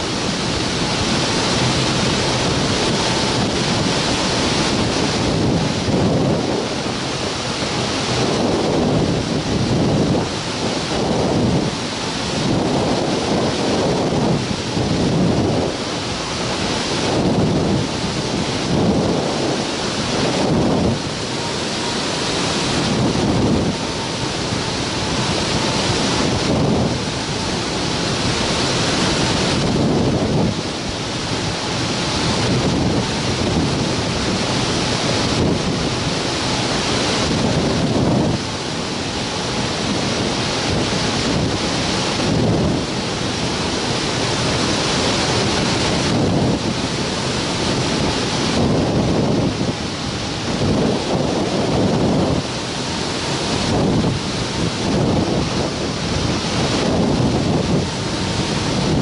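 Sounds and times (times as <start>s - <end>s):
wind rushing over microphone: 0.0s - 59.0s.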